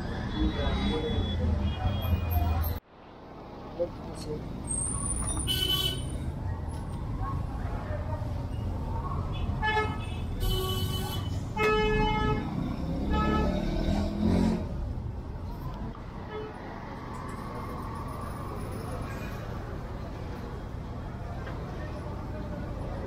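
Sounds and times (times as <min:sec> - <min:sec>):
street traffic rumble: 0:00.0 - 0:23.0.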